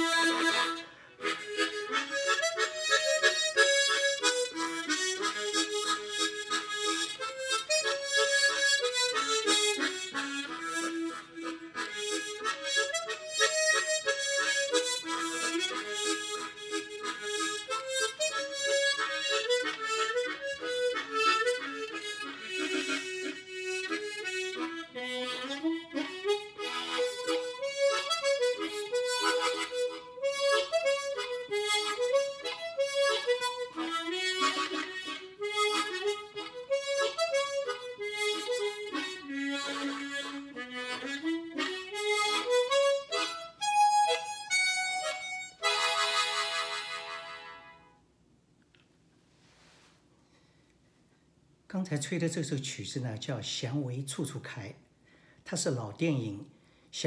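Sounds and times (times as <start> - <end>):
tremolo harmonica melody: 0.0 - 48.1.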